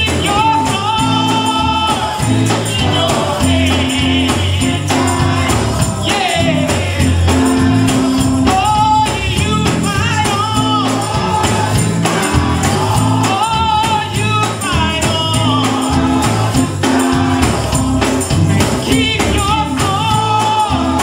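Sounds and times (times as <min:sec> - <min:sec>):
instrumental accompaniment: 0:00.0 - 0:21.0
tambourine beat: 0:00.0 - 0:21.0
choir singing: 0:00.1 - 0:09.2, 0:10.6 - 0:21.0.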